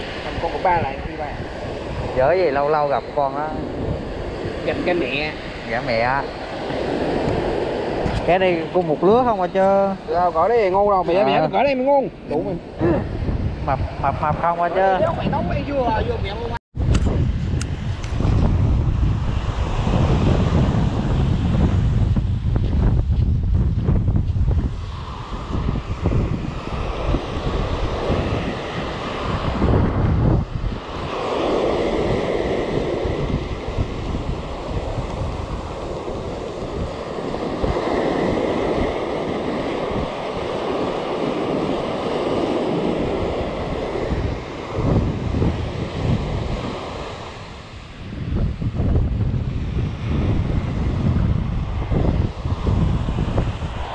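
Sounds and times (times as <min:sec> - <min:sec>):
sea waves breaking on beach: 0:00.0 - 0:53.9
wind buffeting microphone: 0:00.0 - 0:53.9.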